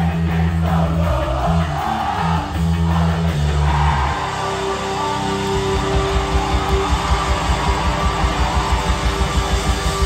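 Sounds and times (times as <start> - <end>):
distorted electric guitars: 0.0 - 10.0
fast drum beat: 5.7 - 10.0.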